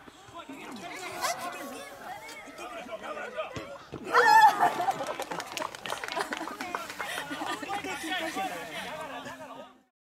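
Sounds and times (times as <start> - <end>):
people talking and calling out: 0.0 - 9.9.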